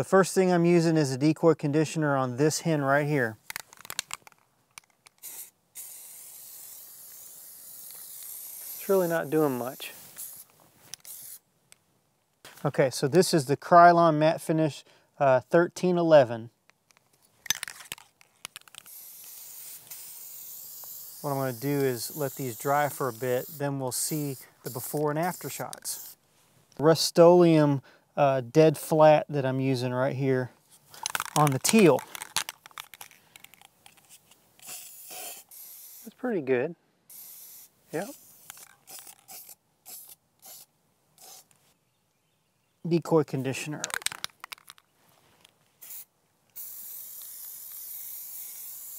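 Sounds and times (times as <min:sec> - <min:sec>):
aerosol can clicks and rattles: 0:03.4 - 0:08.9, 0:10.2 - 0:11.8, 0:16.7 - 0:21.7, 0:30.9 - 0:36.1, 0:38.4 - 0:40.6, 0:43.8 - 0:48.9
aerosol can spraying hiss: 0:05.2 - 0:11.4, 0:18.8 - 0:26.2, 0:34.6 - 0:36.2, 0:37.1 - 0:41.5, 0:45.8 - 0:48.9.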